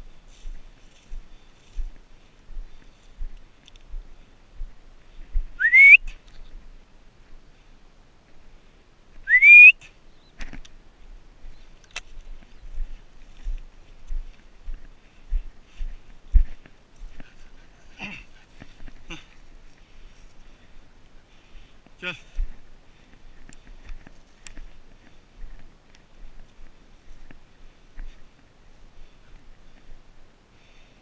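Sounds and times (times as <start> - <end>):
dry brush rustling: 0.0 - 5.5, 10.4 - 30.9
person whistling rising note: 5.6 - 6.0.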